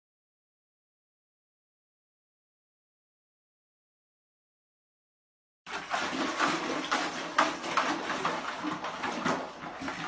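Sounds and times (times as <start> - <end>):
dog pawing plastic bucket: 5.7 - 10.0.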